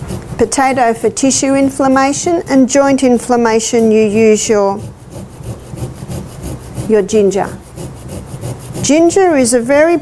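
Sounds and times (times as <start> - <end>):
ginger grated on metal grater: 0.0 - 10.0.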